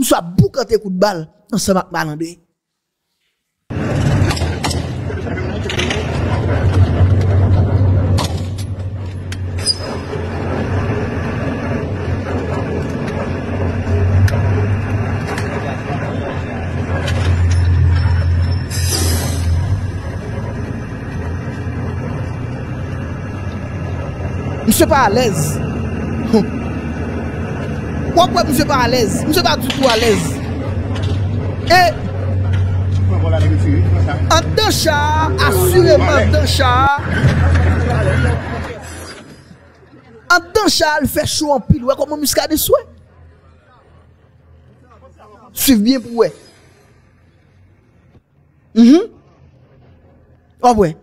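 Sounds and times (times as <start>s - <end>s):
vehicle engine rumble: 3.7s - 50.6s.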